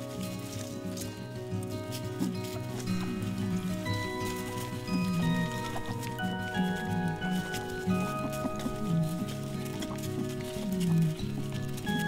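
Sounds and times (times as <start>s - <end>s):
slow ambient music: 0.0s - 12.0s.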